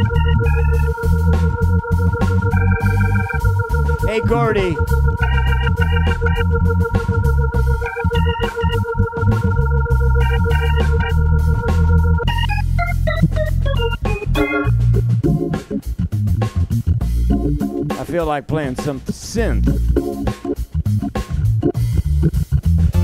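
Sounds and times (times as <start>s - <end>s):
organ playing: 0.0s - 23.0s.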